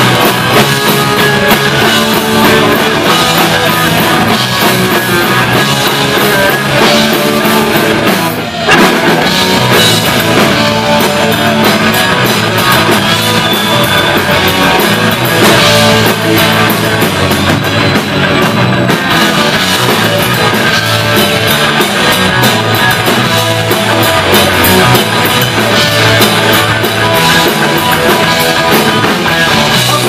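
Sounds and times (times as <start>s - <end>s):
bass guitar: 0.0s - 30.0s
drum kit: 0.0s - 30.0s
electric guitars: 0.0s - 30.0s.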